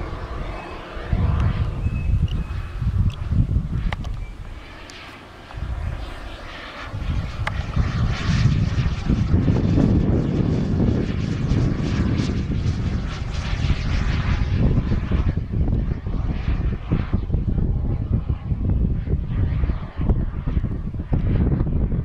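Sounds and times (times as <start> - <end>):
model jet turbine roar: 0.0 - 22.0.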